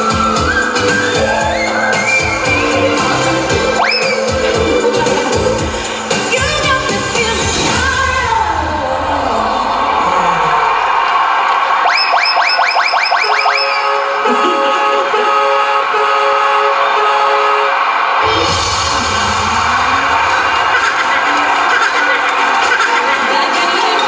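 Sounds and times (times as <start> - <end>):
dance-pop music over pa: 0.0 - 10.9, 17.8 - 24.0
crowd cheering: 0.0 - 24.0.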